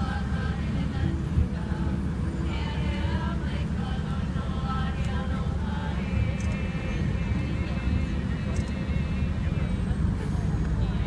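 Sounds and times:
faint distant voices: 0.0s - 11.0s
steady low rumble: 0.0s - 11.0s.

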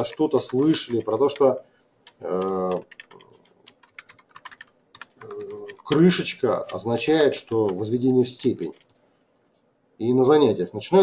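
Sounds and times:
keyboard typing: 0.0s - 9.0s.

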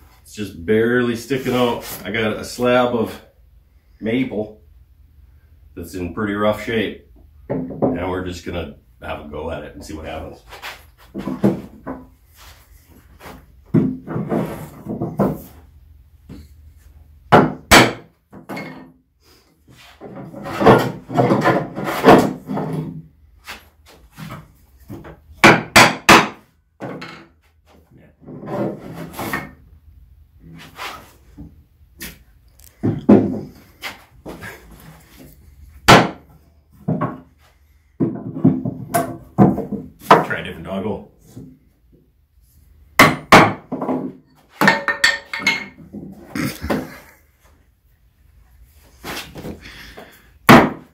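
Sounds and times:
wooden blocks and tools set down: 10.6s - 12.2s, 43.7s - 47.1s.

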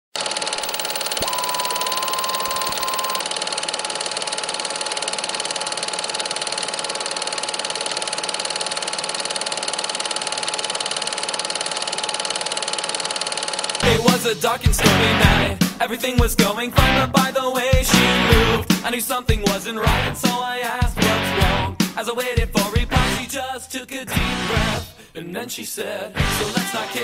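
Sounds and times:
held tone: 0.6s - 3.2s.

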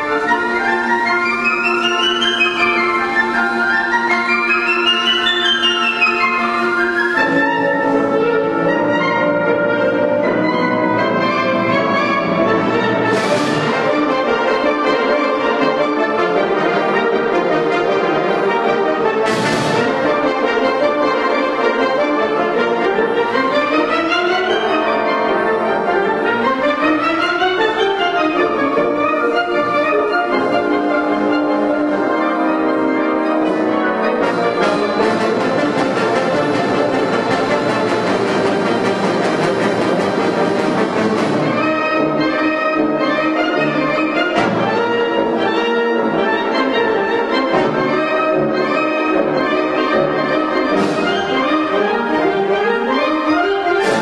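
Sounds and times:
wind band playing fast piece: 0.0s - 54.0s.

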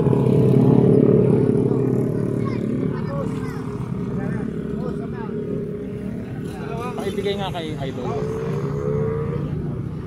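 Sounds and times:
people talking: 1.5s - 5.5s, 6.3s - 8.6s.

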